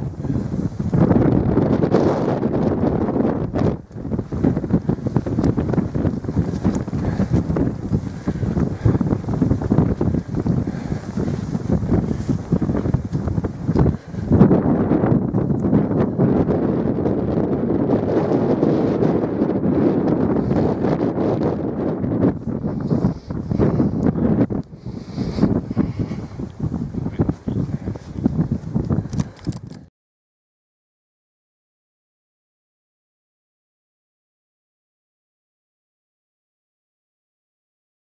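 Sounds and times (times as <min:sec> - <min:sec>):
wind buffeting microphone: 0:00.0 - 0:29.9.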